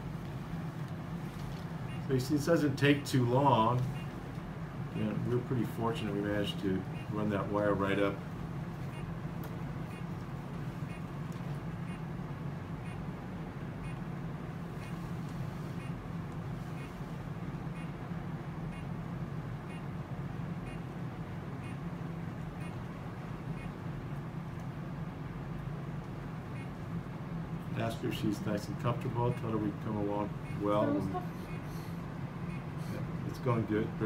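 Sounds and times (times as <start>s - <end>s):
low equipment hum: 0.0s - 34.0s.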